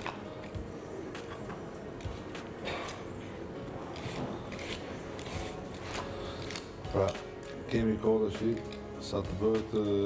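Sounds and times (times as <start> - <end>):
peeler scraping potato skin: 3.8 - 8.9.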